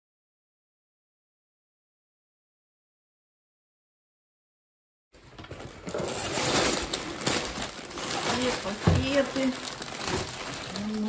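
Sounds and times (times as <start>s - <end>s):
plastic bags rustling: 5.2s - 11.0s.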